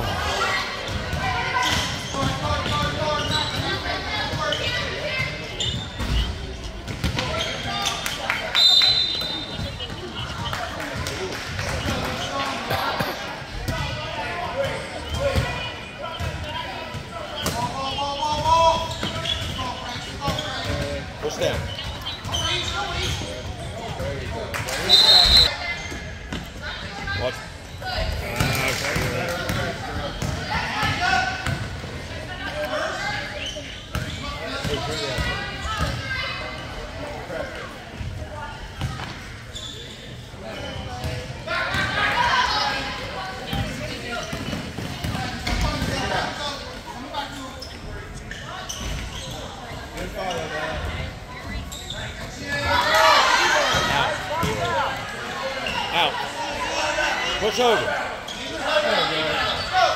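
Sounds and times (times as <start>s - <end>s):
referee's whistle: 8.5s - 9.8s, 24.8s - 25.6s.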